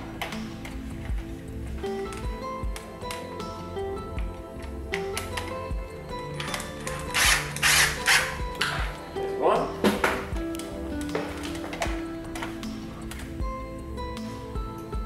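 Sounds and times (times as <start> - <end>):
background music: 0.0 - 15.0
cordless drill driving screws: 6.8 - 9.0.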